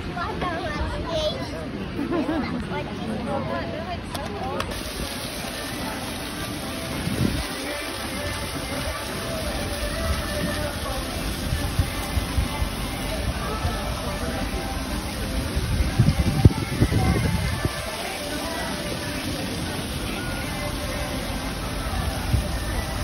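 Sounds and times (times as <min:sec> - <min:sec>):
faint music: 0:00.0 - 0:23.0
outdoor noise: 0:00.0 - 0:23.0.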